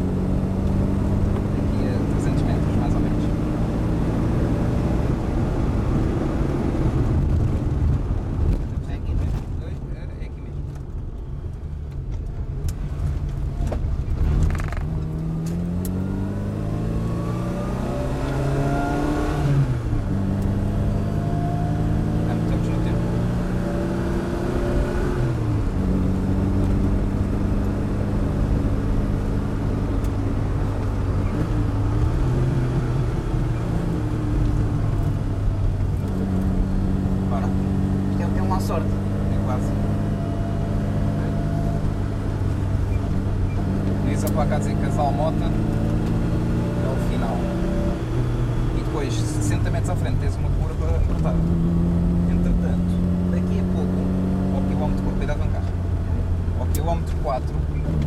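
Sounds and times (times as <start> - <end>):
car engine accelerating through gears: 0.0 - 58.0.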